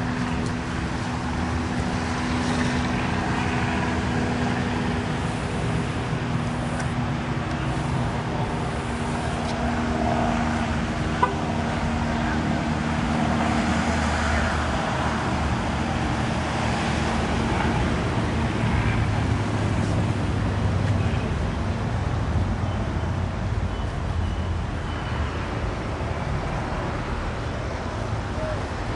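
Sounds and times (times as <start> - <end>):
car engines running: 0.0 - 28.9.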